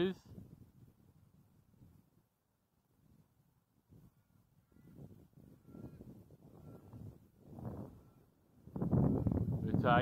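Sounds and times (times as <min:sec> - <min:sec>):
wind buffeting microphone: 0:00.0 - 0:02.3, 0:02.9 - 0:10.0.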